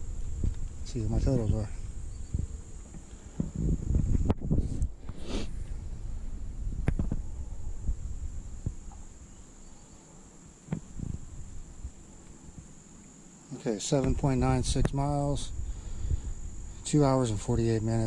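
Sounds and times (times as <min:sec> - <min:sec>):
crickets trilling: 0:00.0 - 0:18.0.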